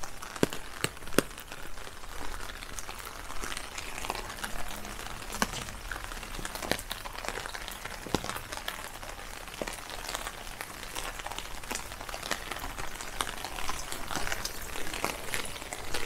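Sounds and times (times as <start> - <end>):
rain ticking on an umbrella: 0.0 - 16.0.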